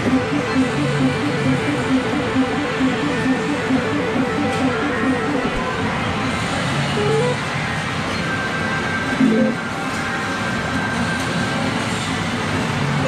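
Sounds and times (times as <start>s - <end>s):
electronic game music: 0.0s - 5.8s
rising electronic notes: 0.0s - 5.8s
arcade machine noise: 0.0s - 7.6s, 9.2s - 9.8s.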